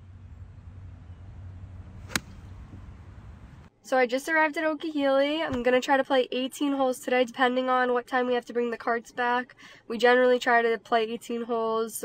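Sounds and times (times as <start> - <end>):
golf club striking ball: 2.0 - 3.0.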